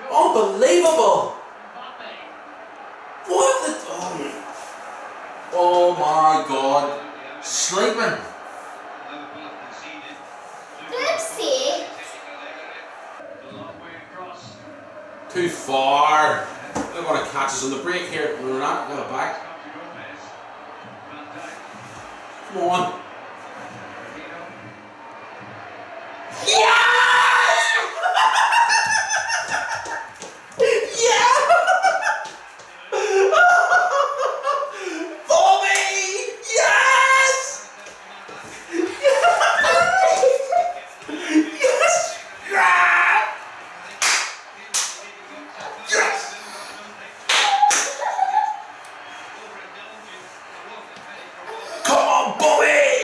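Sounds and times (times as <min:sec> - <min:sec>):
man and boy shouting excitedly: 0:10.9 - 0:12.1, 0:26.4 - 0:28.6, 0:30.8 - 0:31.9, 0:35.3 - 0:37.6, 0:39.3 - 0:40.4, 0:41.6 - 0:43.4
man and boy screaming: 0:26.4 - 0:28.6, 0:41.6 - 0:43.3
man and boy laughing: 0:28.0 - 0:32.3
sharp slaps: 0:44.0 - 0:45.0, 0:47.3 - 0:48.0.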